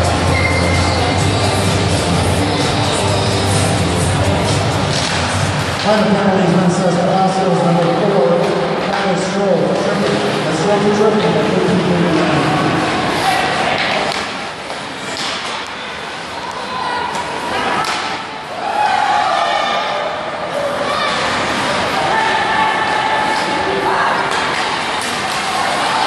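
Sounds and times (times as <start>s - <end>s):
spectators talking and shouting: 0.0s - 26.0s
puck and sticks hitting boards: 4.9s - 6.1s, 7.8s - 10.4s, 13.1s - 15.8s, 16.5s - 18.3s, 24.2s - 26.0s.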